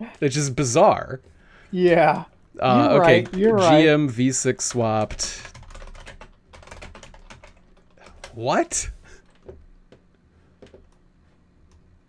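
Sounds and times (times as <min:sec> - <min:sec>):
rapid keyboard typing: 0:02.9 - 0:11.0.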